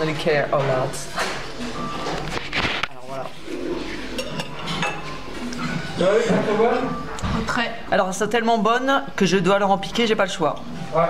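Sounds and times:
murmur of restaurant voices: 0.0 - 11.0.

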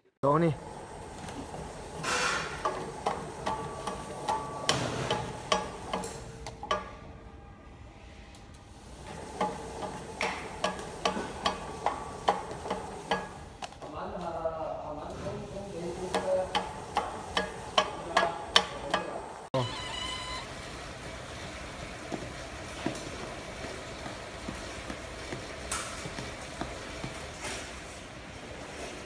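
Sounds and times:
feeder machine running: 15.2 - 27.4.

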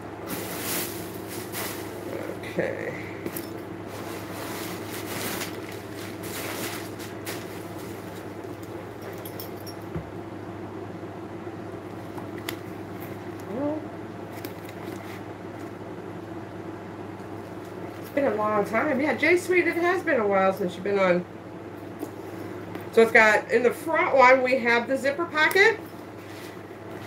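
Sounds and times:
steady low hum: 0.0 - 27.0
handbag rustling: 3.2 - 9.8
metal hardware clinks: 8.9 - 9.9.

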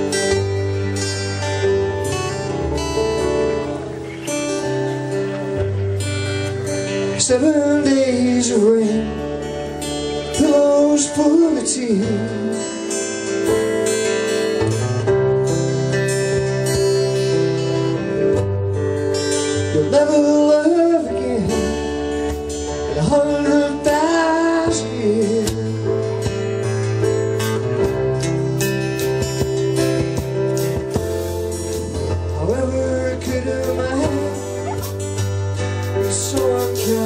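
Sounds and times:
acoustic guitars strummed: 0.0 - 37.0
keyboard: 0.0 - 37.0
man singing: 6.9 - 12.9, 19.6 - 26.2, 31.9 - 35.0, 35.6 - 37.0.

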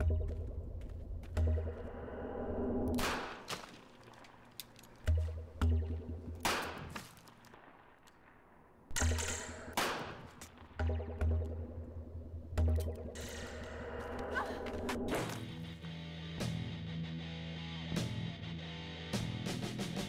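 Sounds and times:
film score with pulsing bass: 0.0 - 3.4, 5.0 - 6.9, 10.6 - 20.0.

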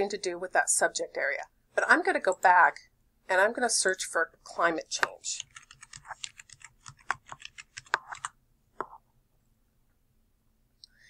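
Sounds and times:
keyboard typing: 5.0 - 9.0.

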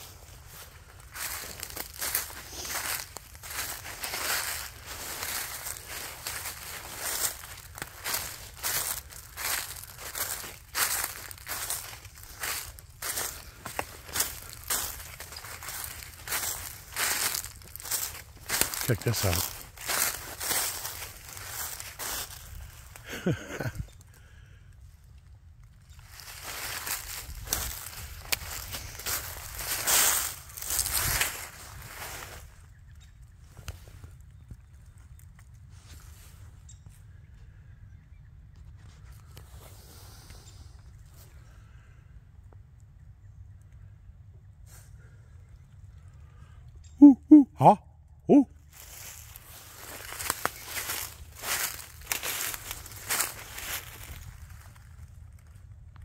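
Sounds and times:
footsteps crunching dry leaves: 0.0 - 23.8, 25.8 - 32.7, 48.3 - 55.6.

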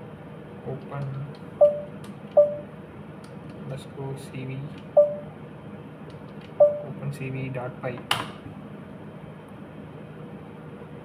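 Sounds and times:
computer alert dings: 1.6 - 2.7, 5.0 - 5.3, 6.6 - 6.9.

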